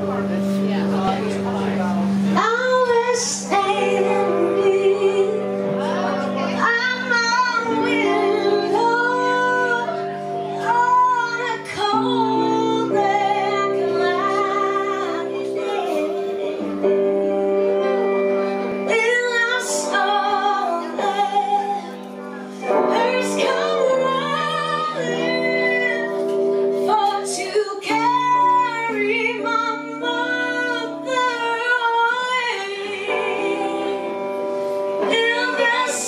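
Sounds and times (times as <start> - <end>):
electric guitar: 0.0 - 36.0
sustained backing notes: 0.0 - 36.0
woman singing: 2.4 - 36.0.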